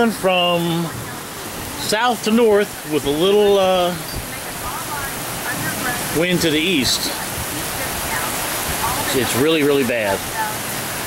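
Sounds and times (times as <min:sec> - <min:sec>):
heavy rain falling on water: 0:00.0 - 0:11.0
wind: 0:00.0 - 0:11.0.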